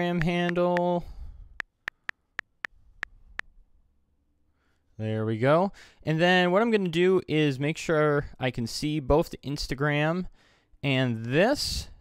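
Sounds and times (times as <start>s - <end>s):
on-screen keyboard typing ticks: 1.6s - 2.7s.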